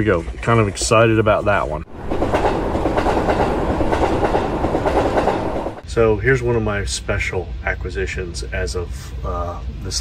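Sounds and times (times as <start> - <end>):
train clattering on rails: 1.9 - 5.8.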